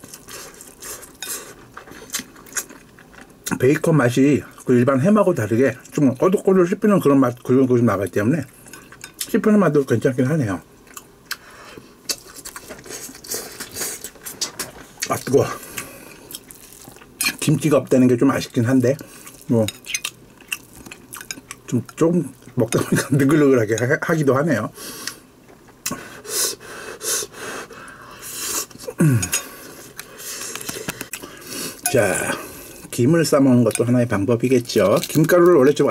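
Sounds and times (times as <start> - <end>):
person chewing food: 0.0 - 3.6, 10.8 - 17.4, 19.0 - 22.6, 27.8 - 32.9
breathing and sniffing: 25.9 - 28.8.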